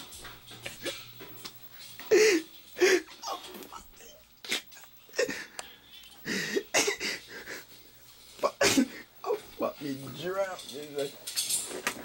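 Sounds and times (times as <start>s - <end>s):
man's stifled laughter: 6.2s - 7.7s.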